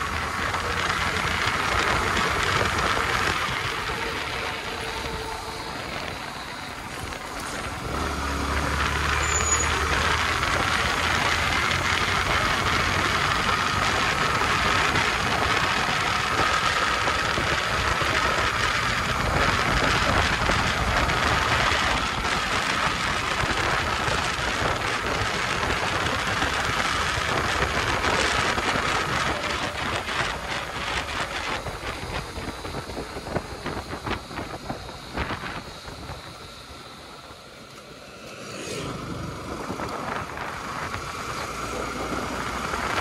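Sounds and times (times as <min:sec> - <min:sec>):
wind on microphone: 0:00.0 - 0:37.3, 0:38.8 - 0:43.0
motorcycle engine accelerating: 0:00.0 - 0:43.0.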